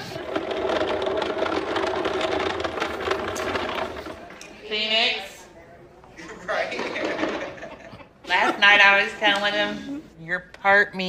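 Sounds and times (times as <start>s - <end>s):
ottoman scraping across hard floor: 0.0s - 4.4s.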